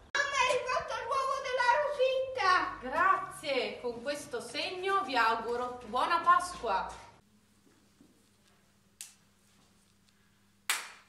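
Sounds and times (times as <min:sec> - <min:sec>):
sharp hand clap: 0:10.7 - 0:11.0.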